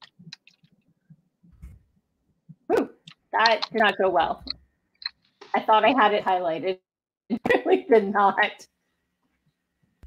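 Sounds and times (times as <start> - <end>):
faint low thumps: 1.5 - 1.9.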